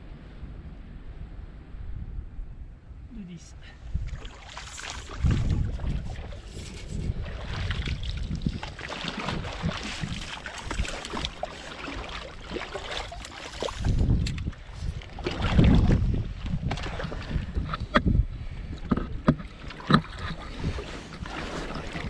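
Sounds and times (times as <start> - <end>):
wind on microphone: 0.0 - 22.0
waders sloshing in water: 4.0 - 17.9, 19.1 - 22.0.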